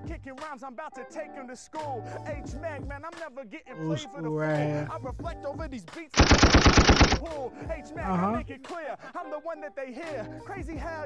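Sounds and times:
person rapping: 0.0s - 11.0s
automatic gunfire sound effect: 6.2s - 7.3s.

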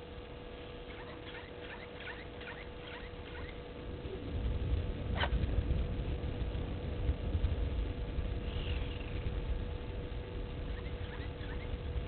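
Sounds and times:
goslings peeping: 0.8s - 3.6s, 10.7s - 11.8s.

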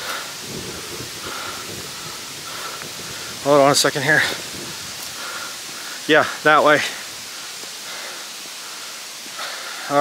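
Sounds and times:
steady hissing rustle: 0.0s - 10.0s.

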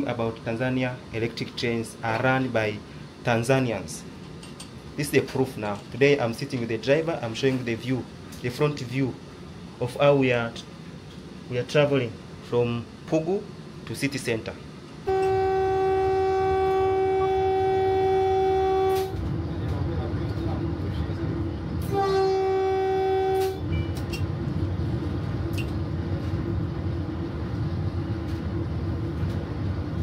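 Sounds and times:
train running rumble: 0.0s - 30.0s
train horn blasts: 15.0s - 19.2s, 21.8s - 23.7s.

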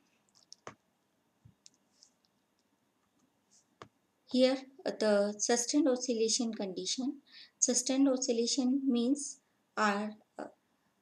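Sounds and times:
computer mouse clicks: 0.3s - 0.8s.

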